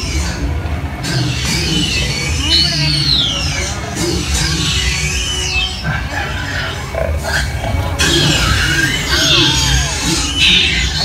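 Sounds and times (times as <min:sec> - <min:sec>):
dinosaur growling calls: 0:00.0 - 0:11.0
low rumble of a ride: 0:00.0 - 0:11.0.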